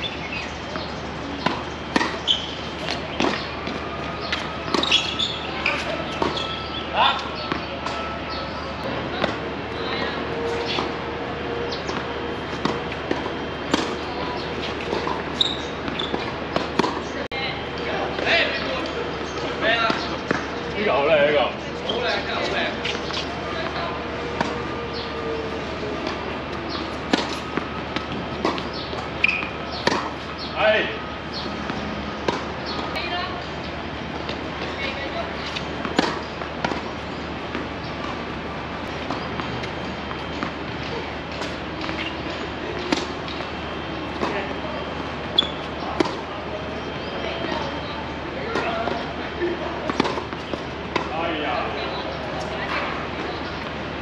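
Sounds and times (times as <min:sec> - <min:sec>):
tennis balls bouncing on court: 0:00.0 - 0:11.0, 0:11.7 - 0:54.0
tennis balls struck by rackets: 0:00.4 - 0:06.6, 0:11.7 - 0:17.3, 0:21.9 - 0:30.6, 0:31.2 - 0:53.8.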